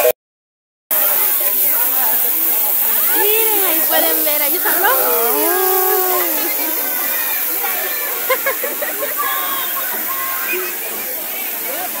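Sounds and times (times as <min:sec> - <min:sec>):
fountain water splashing: 0:00.9 - 0:12.0
people chattering: 0:00.9 - 0:12.0.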